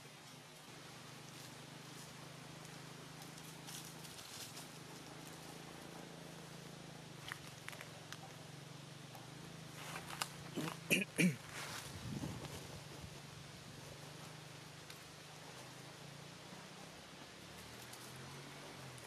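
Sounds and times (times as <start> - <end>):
rustling of dry leaves: 0.0 - 19.0
steady low hum: 0.0 - 19.0.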